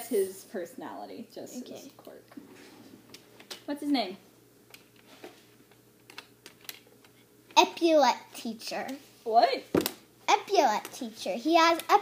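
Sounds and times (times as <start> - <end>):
girl speaking: 1.4 - 2.2, 7.6 - 9.7, 10.3 - 12.0.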